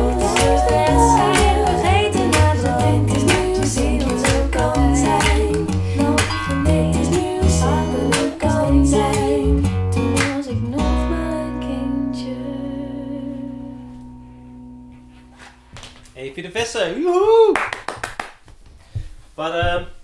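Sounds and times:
pop song with female vocals: 0:00.0 - 0:14.0.

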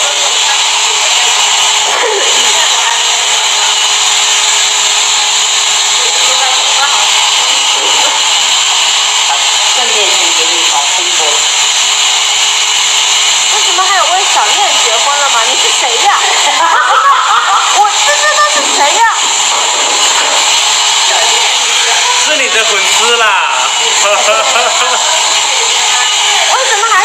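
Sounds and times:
faint voices: 0:00.0 - 0:11.7, 0:13.5 - 0:27.0
hair dryer blowing: 0:00.0 - 0:27.0.

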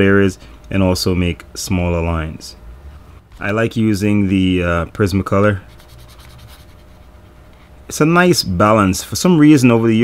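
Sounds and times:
pen scratching on paper: 0:05.7 - 0:07.2.

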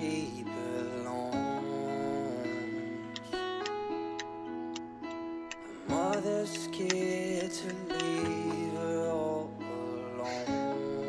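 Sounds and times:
held notes background score: 0:00.0 - 0:11.0
light ticking: 0:03.1 - 0:08.7.

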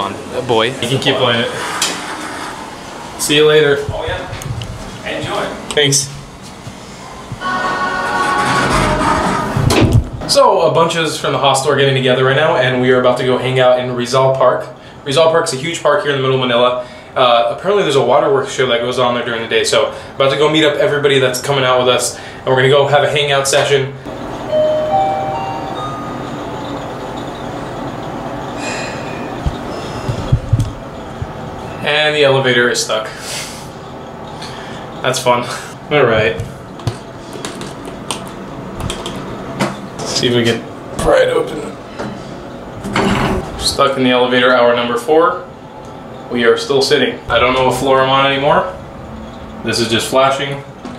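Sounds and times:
elevator car rumbling: 0:00.0 - 0:14.3, 0:23.0 - 0:50.9
elevator whine: 0:00.0 - 0:50.9
music with sustained tones: 0:07.4 - 0:09.7, 0:24.4 - 0:28.1
low thumps: 0:29.3 - 0:31.7.

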